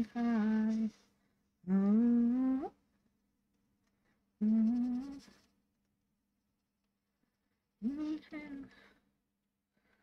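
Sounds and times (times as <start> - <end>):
woman humming: 1.7 - 2.8, 4.4 - 5.4.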